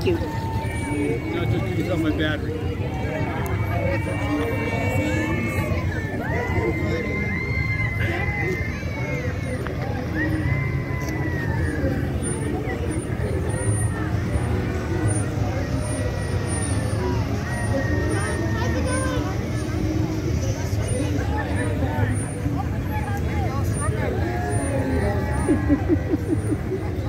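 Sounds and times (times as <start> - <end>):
crowd chatter and calls: 0.0 - 27.0
slow vehicle engines rumbling: 0.0 - 27.0.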